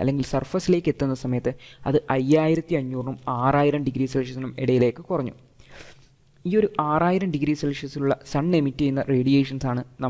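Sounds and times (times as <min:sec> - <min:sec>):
faint hiss: 0:05.1 - 0:06.9.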